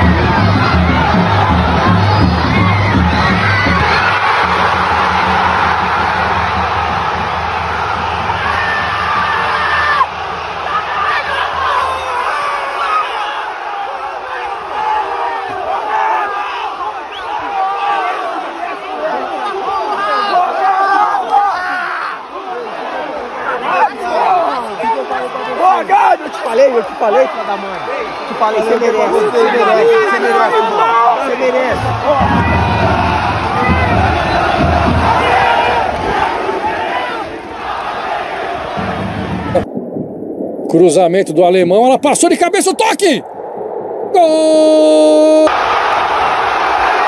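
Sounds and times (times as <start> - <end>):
music with heavy beat: 0.0 - 9.6, 31.8 - 35.8
players shouting excitedly: 0.0 - 39.5
crowd cheering and shouting: 0.0 - 40.0, 42.1 - 47.0.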